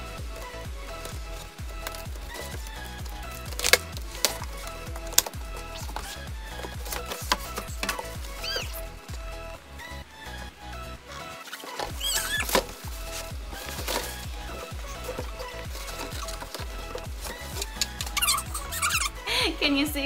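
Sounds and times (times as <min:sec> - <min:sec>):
upbeat electronic music: 0:00.0 - 0:20.0.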